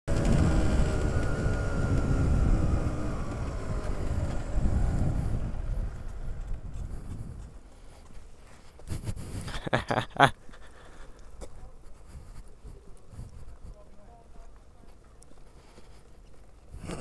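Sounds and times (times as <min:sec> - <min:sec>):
motorcycle engine rumbling: 0:00.1 - 0:08.0.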